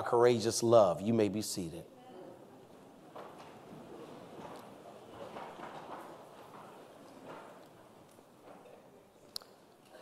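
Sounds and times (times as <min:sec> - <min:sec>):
congregation shuffling and rustling: 0:00.0 - 0:10.0.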